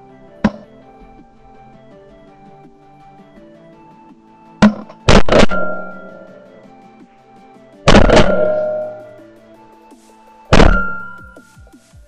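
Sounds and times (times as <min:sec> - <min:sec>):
background music: 0:00.0 - 0:12.0
shotgun shots: 0:04.6 - 0:06.1, 0:07.9 - 0:09.0, 0:10.5 - 0:11.2.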